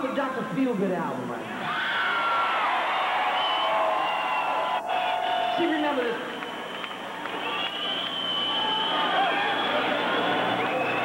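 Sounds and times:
crowd cheering: 0:01.4 - 0:11.0.

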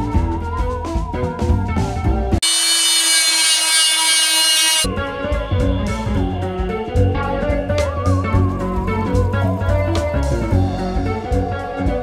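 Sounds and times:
power sander whining: 0:02.4 - 0:04.9
guitar background music: 0:04.9 - 0:12.0.

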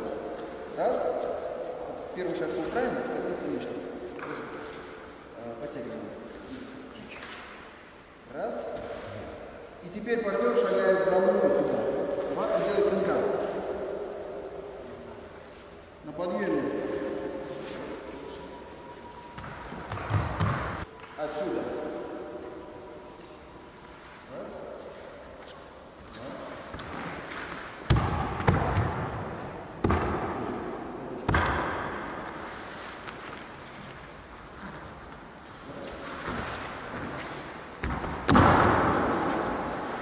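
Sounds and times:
bare feet on mats: 0:32.0 - 0:40.0.

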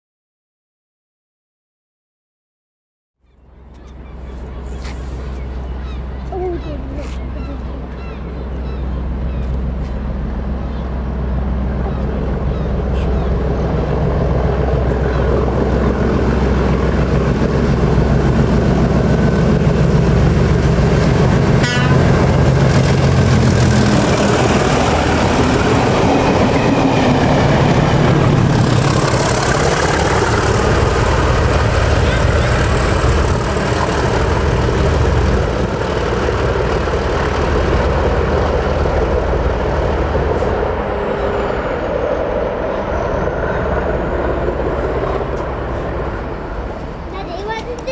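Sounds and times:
diesel locomotives running: 0:03.2 - 0:47.9
train rumbling on rails: 0:03.3 - 0:47.9.

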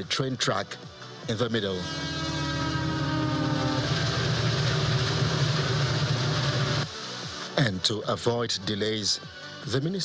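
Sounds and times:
train horn: 0:01.7 - 0:06.8
moving train rumble: 0:01.8 - 0:06.9.

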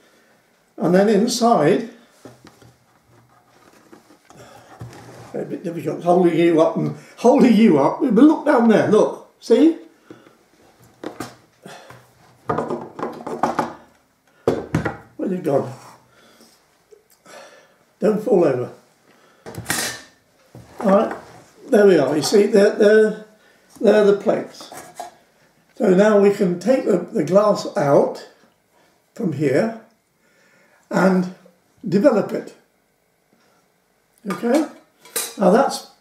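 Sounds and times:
objects scraping on wooden table: 0:02.3 - 0:05.4.

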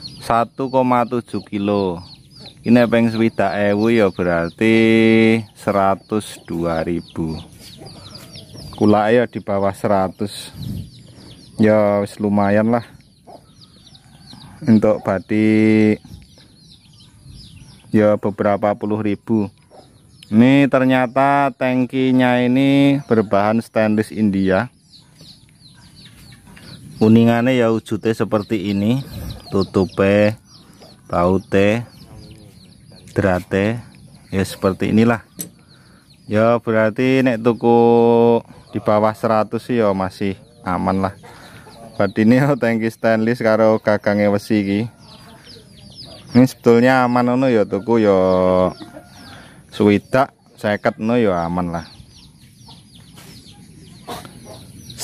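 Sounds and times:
bird chirping: 0:00.0 - 0:55.0.

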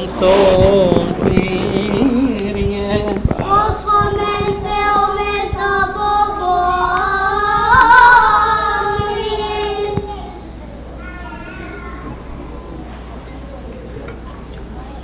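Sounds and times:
young voices chanting: 0:00.0 - 0:13.0.

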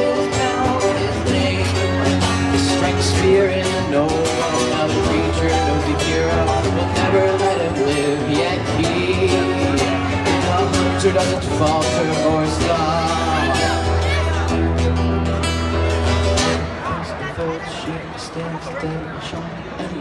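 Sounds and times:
acoustic guitar strumming: 0:00.0 - 0:18.4.

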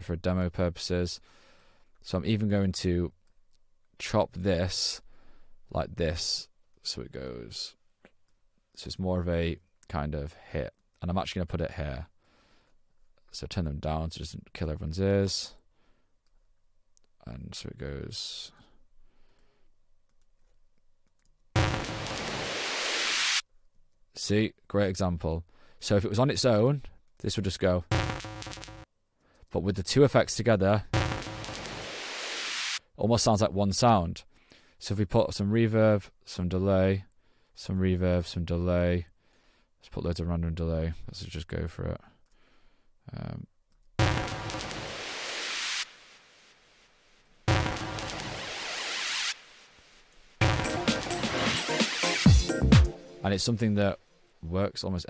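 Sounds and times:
reversed white-noise riser: 0:21.6 - 0:23.4, 0:31.0 - 0:32.8, 0:44.0 - 0:46.6, 0:47.5 - 0:52.2.

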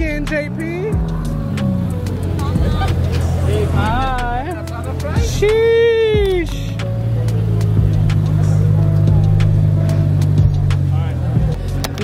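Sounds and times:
car engine droning: 0:00.0 - 0:12.0
music: 0:00.0 - 0:12.0.

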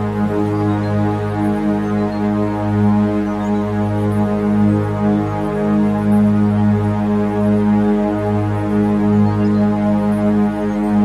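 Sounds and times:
deep sustained drone tone: 0:00.0 - 0:11.0.

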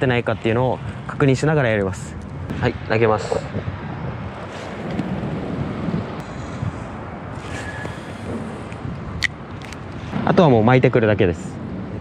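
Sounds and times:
low rumble of traffic: 0:00.0 - 0:12.0
wind buffeting microphone: 0:00.0 - 0:12.0.

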